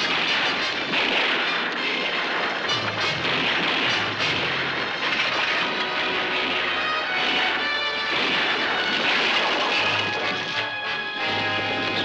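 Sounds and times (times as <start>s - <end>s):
sustained musical tones: 5.5s - 9.1s, 9.8s - 12.0s.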